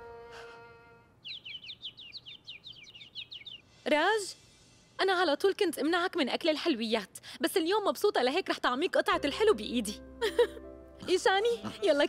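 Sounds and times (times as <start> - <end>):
bird chirping: 1.2 - 3.8
music: 9.1 - 12.0.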